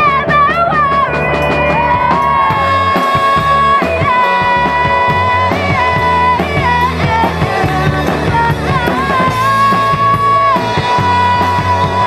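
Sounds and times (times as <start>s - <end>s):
electric bass guitar: 0.0s - 12.0s
steady drum beat: 0.0s - 12.0s
woman singing lead vocal: 0.0s - 12.0s.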